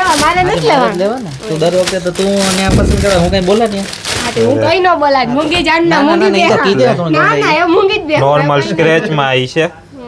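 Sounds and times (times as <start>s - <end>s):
plastic packaging crinkling: 0.0s - 5.6s.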